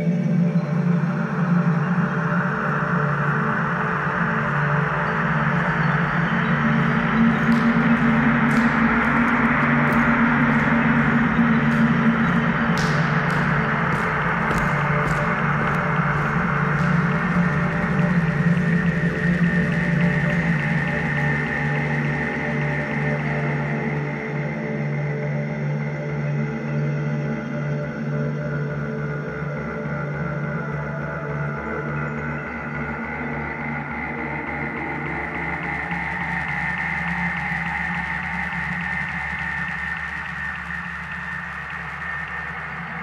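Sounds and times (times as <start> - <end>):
ambient electronic music: 0.0 - 43.0.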